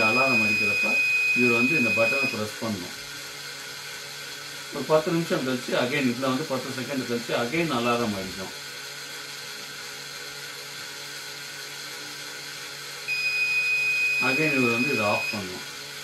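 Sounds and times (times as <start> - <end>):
high-pitched buzzer beep: 0.0 - 2.5, 13.1 - 15.6
small gear motor humming: 0.0 - 16.0.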